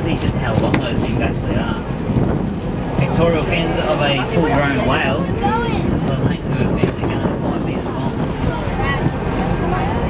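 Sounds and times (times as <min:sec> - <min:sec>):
boat running noise: 0:00.0 - 0:10.0
wind buffeting microphone: 0:00.0 - 0:10.0
faint voices: 0:02.9 - 0:10.0.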